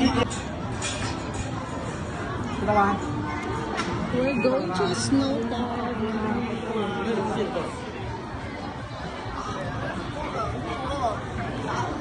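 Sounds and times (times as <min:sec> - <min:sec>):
crowd of people talking: 0:00.0 - 0:12.0.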